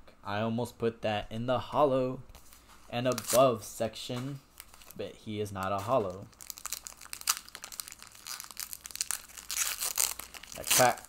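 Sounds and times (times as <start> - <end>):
foil wrapper crinkling: 4.5 - 5.0, 5.7 - 11.0.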